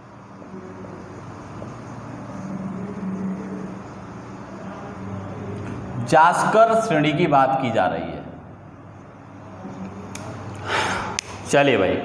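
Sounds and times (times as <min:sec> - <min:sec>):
low motor hum: 0:00.0 - 0:07.3.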